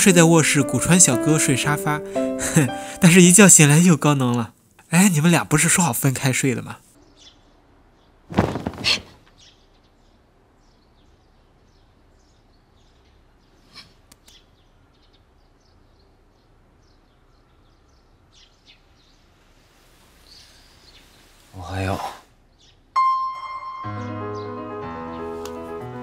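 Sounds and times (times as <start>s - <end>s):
music: 0.0s - 3.1s, 23.0s - 26.0s
faint bird chirps: 20.0s - 24.5s
ringing tone: 23.0s - 24.2s.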